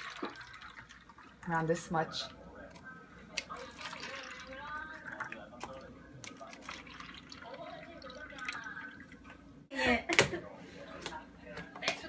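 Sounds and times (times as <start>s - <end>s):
liquid pouring into cups: 0.0s - 1.9s, 3.3s - 9.6s.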